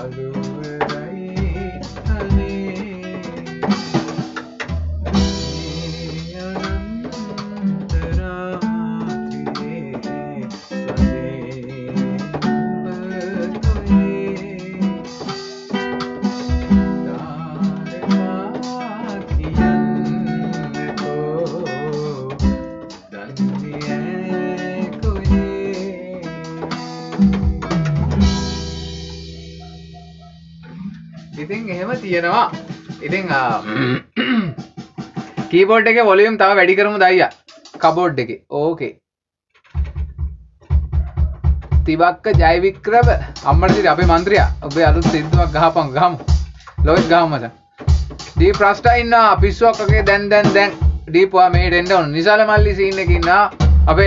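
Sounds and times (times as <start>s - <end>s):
acoustic guitar strumming: 0.0s - 38.1s, 39.6s - 54.0s
electronic keyboard notes: 10.9s - 32.8s.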